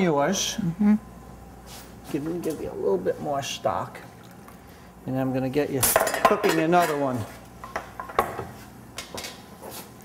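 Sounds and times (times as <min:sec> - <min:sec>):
cookware and utensils clinking: 0:05.8 - 0:08.4.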